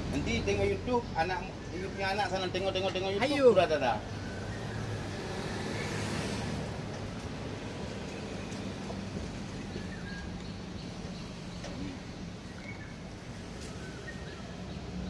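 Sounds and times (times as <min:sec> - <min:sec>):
street traffic noise: 0:00.0 - 0:15.0
vehicle passing: 0:03.7 - 0:09.9.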